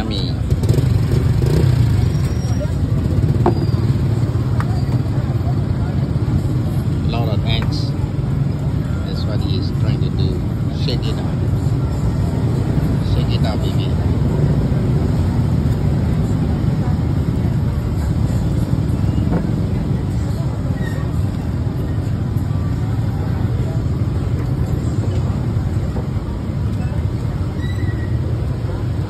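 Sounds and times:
road traffic rumble: 0.0s - 29.0s.

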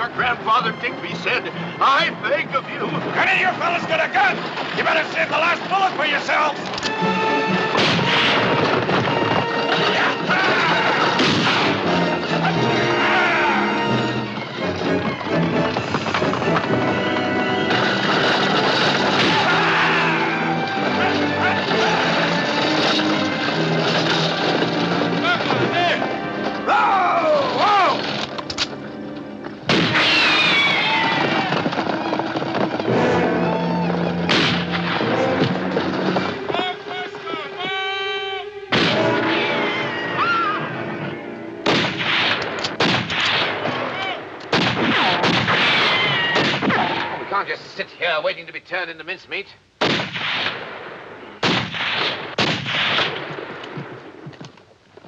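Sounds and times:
western film score music: 0.0s - 55.0s
gunshots: 7.7s - 12.6s, 17.6s - 26.2s, 29.7s - 33.2s, 34.2s - 36.4s, 38.7s - 39.6s, 41.6s - 47.3s, 49.8s - 54.2s
voices yelling: 9.6s - 14.2s, 19.1s - 23.5s, 25.0s - 28.1s, 36.2s - 41.4s.

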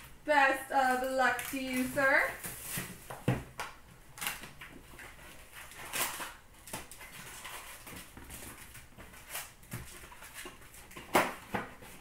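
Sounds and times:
plastic wrapper crinkling: 0.7s - 3.2s, 4.1s - 12.0s.

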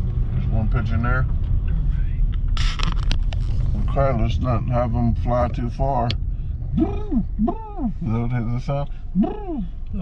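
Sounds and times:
car engine and tyres rumble: 0.0s - 10.0s.

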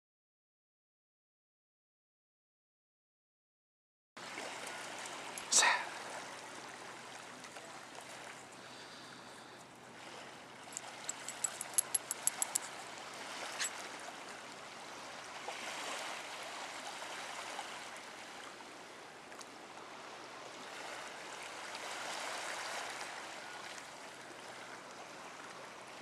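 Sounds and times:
small waves washing on shore: 4.2s - 26.0s
sharp high clicks: 10.8s - 12.7s.

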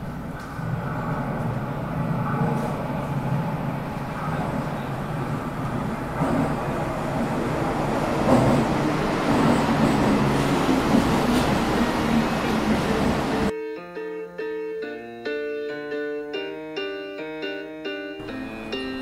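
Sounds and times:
subway train rumbling: 0.0s - 13.5s, 18.2s - 19.0s.

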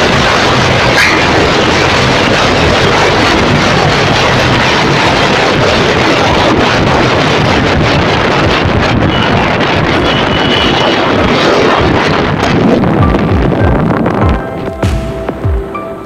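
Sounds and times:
motorcycle engine: 0.0s - 15.8s
road noise: 0.0s - 16.0s
wind buffeting microphone: 0.0s - 16.0s.

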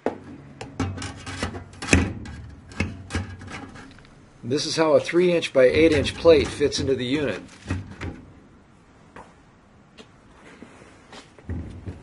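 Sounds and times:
metal plate scraping plastic and wire: 0.6s - 4.1s, 5.6s - 8.3s.

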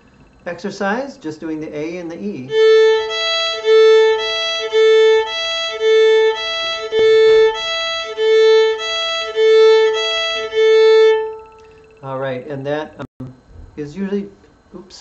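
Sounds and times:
fiddle playing alternating notes: 2.2s - 12.1s.

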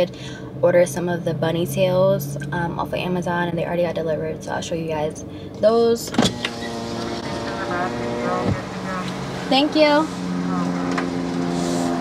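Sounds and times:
car engine hum from cabin: 0.0s - 12.0s.

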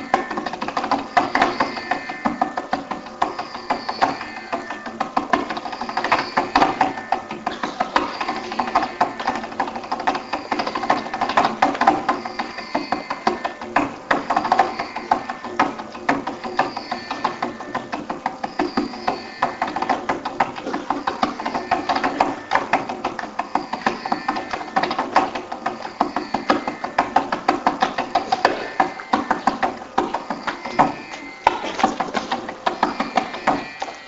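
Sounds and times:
fast mridangam strokes: 0.0s - 34.0s.

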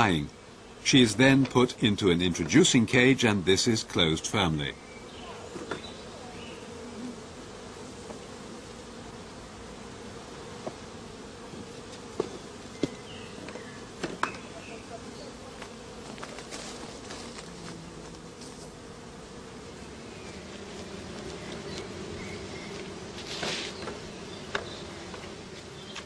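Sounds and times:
honey bees buzzing: 0.0s - 26.0s.

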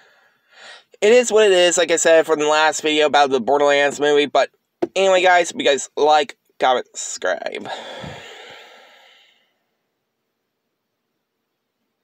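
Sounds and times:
man sighing through the nose: 7.6s - 9.4s.

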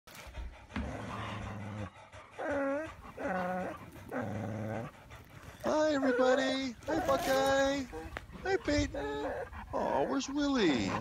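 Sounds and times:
dogs vocalizing: 0.1s - 11.0s.

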